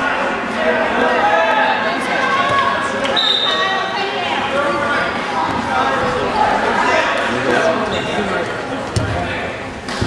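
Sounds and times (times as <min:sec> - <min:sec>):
crowd shouting and talking: 0:00.0 - 0:10.0.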